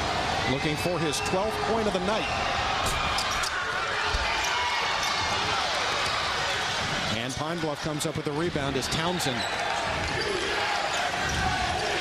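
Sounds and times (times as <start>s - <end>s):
crowd noise in a gym: 0.0s - 12.0s.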